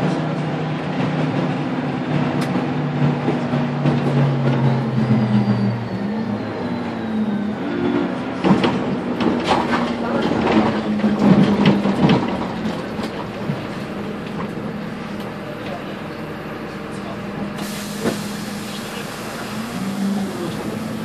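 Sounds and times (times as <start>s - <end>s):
bus engine and body rattling: 0.0s - 21.0s
air hissing: 17.6s - 21.0s.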